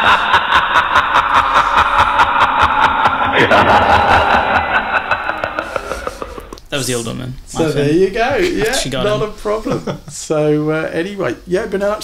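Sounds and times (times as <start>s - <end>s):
person snickering: 0.0s - 6.7s
people talking: 0.0s - 12.0s.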